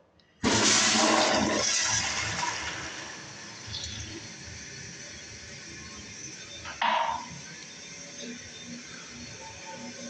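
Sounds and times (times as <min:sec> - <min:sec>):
toilet flushing: 0:00.4 - 0:10.0.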